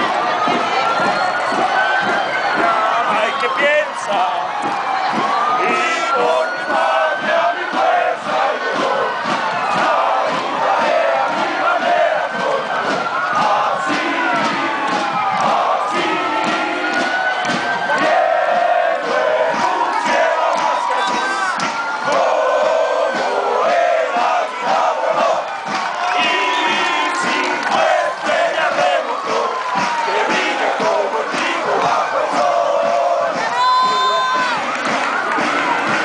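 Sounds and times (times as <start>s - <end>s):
crowd cheering and shouting: 0.0s - 36.0s.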